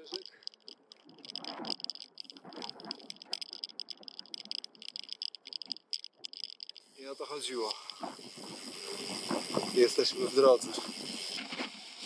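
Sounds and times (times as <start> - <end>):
bicycle freewheel ticking: 0.0 - 12.0
low wind: 0.0 - 12.0
tyre hiss: 7.0 - 11.6.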